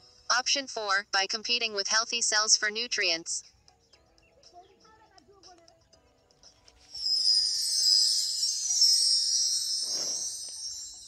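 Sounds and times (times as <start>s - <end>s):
sparkling jingling chime: 6.8s - 11.0s.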